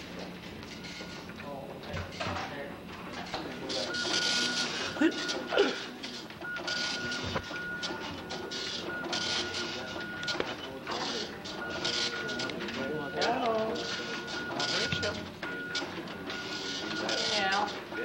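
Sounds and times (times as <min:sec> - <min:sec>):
dot-matrix printers printing: 0:00.0 - 0:18.0.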